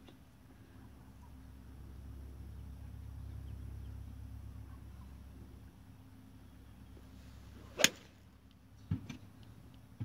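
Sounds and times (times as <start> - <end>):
golf club swish: 7.5 - 8.2
golf ball struck crack: 7.7 - 8.2.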